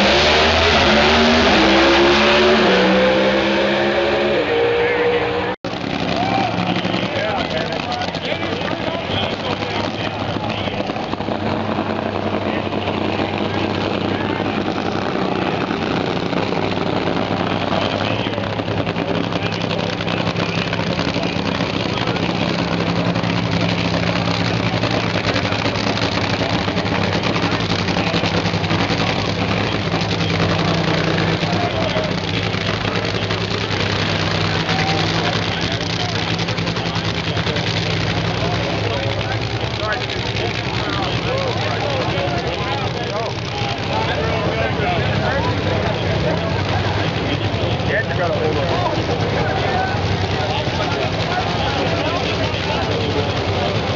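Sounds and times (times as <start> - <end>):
crowd chatter: 0.0 - 53.9
drag racing engines idling: 0.0 - 53.9.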